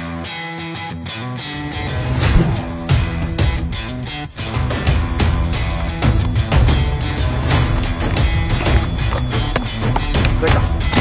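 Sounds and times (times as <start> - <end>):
background music with strong bass: 0.0 - 11.0.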